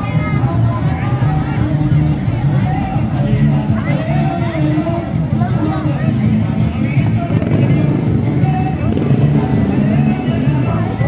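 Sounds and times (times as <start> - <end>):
background music: 0.0 - 11.0
motocross bike engines: 0.0 - 11.0
spectators talking: 0.0 - 11.0.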